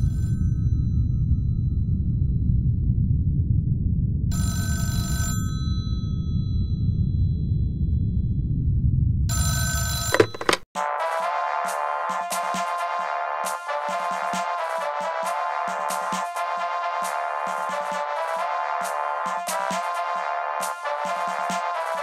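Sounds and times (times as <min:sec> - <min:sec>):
low rumbling drone: 0:00.6 - 0:04.3, 0:06.2 - 0:09.3
landline telephone ringing: 0:10.0 - 0:10.6.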